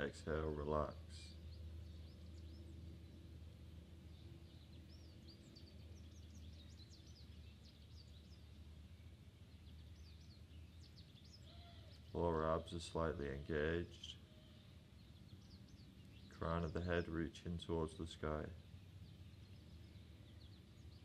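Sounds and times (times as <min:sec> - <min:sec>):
low steady hum: 0:00.0 - 0:21.0
songbirds chirping: 0:00.0 - 0:21.0.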